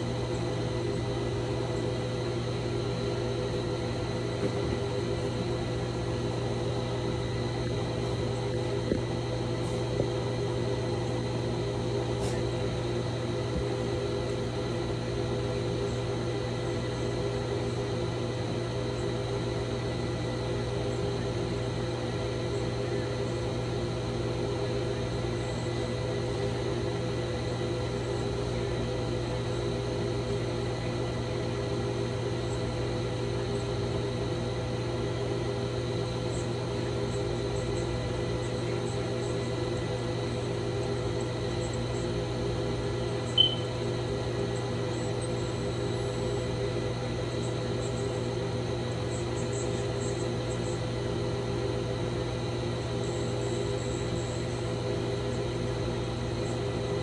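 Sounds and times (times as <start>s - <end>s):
appliance humming: 0.0s - 57.0s.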